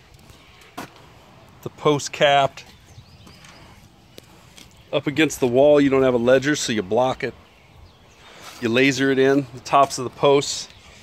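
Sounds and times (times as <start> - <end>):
man's voice: 4.9 - 7.4, 8.6 - 10.7.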